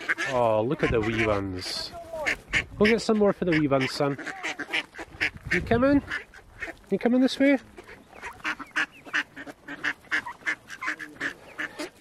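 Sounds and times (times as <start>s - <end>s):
ducks quacking: 0.0s - 12.0s.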